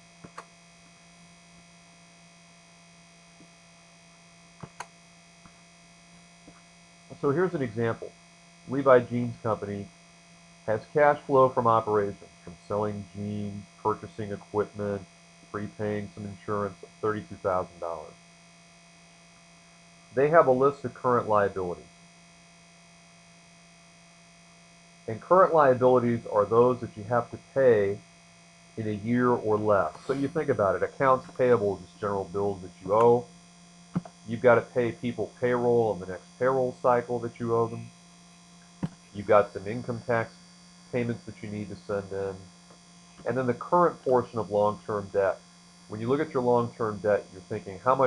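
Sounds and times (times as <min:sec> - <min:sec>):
low electrical hum: 0:00.0 - 0:48.0
light hiss: 0:29.6 - 0:31.6.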